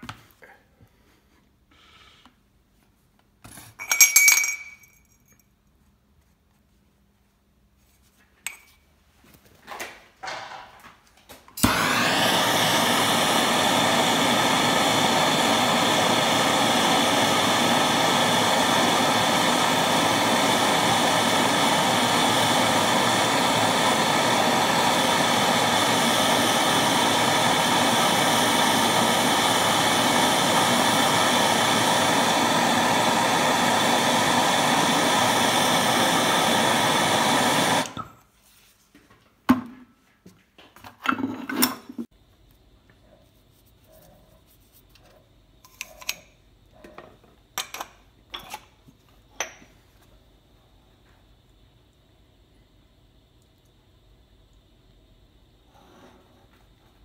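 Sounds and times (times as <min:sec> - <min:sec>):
metallic clinks with ringing: 0:03.8 - 0:05.5
gas torch hissing: 0:11.6 - 0:38.0.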